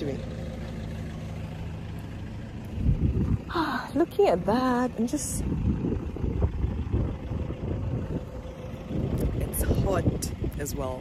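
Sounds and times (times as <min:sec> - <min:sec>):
engine rumbling: 0:00.0 - 0:11.0.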